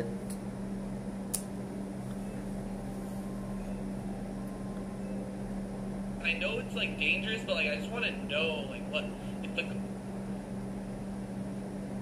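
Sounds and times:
fan drone: 0:00.0 - 0:12.0.

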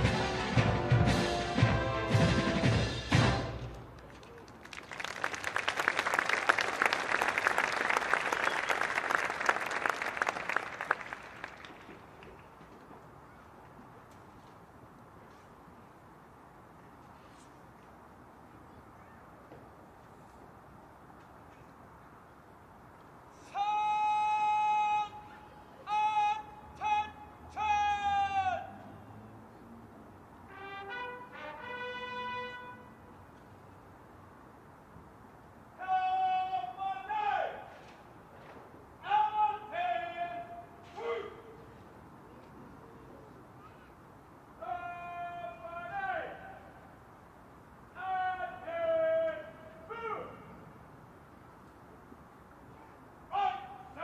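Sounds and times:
person shouting drill command: 0:23.4 - 0:28.8, 0:35.8 - 0:37.7, 0:39.0 - 0:41.5, 0:44.6 - 0:46.6, 0:47.9 - 0:50.5, 0:53.3 - 0:54.0
bugle call: 0:23.4 - 0:28.9, 0:30.5 - 0:33.2.

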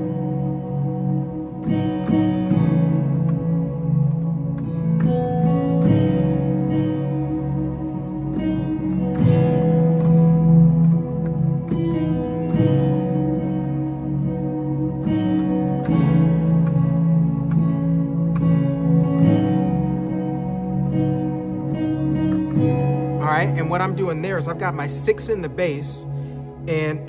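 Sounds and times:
synthesizer keyboard chords: 0:00.0 - 0:27.0.

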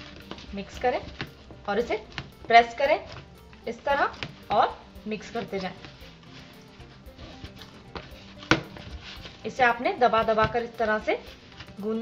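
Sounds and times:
hands kneading dough: 0:00.0 - 0:12.0
soft background music: 0:00.0 - 0:12.0.

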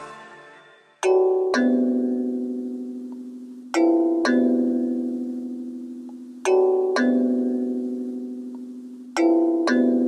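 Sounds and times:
bell-like mallet chord: 0:00.0 - 0:05.9
instrumental background music: 0:00.0 - 0:10.0.

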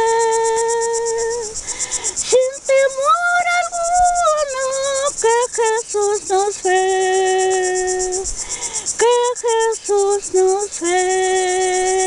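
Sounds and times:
elderly woman singing a hymn: 0:00.0 - 0:12.0
insects chirping: 0:00.0 - 0:12.0.

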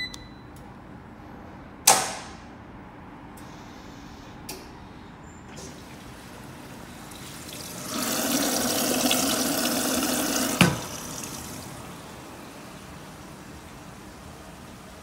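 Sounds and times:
sharp click: 0:01.8 - 0:02.4
water rushing into dispenser: 0:05.5 - 0:11.9.

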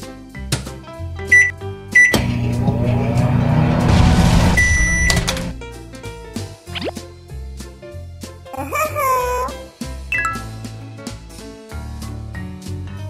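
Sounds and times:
toy microwave beeps: 0:01.3 - 0:02.2, 0:04.6 - 0:05.3, 0:10.1 - 0:10.5.

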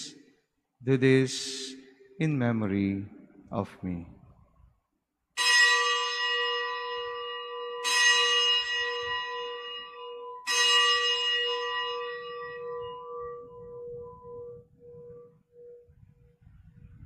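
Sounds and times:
bell ringing: 0:05.4 - 0:15.3
wavering low hum: 0:12.0 - 0:17.0.

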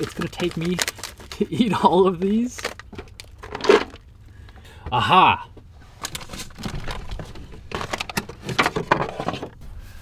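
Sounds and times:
items knocking and clattering: 0:02.6 - 0:04.0, 0:06.1 - 0:09.6.

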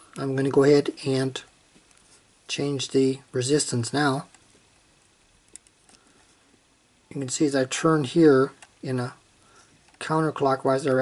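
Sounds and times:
faint small clicks: 0:04.3 - 0:04.9, 0:05.5 - 0:06.2.

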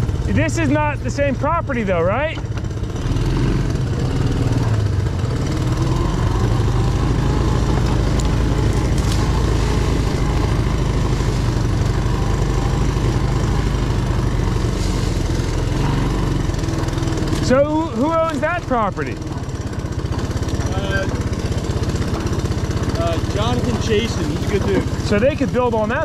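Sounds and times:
atv engine running: 0:00.0 - 0:26.0.

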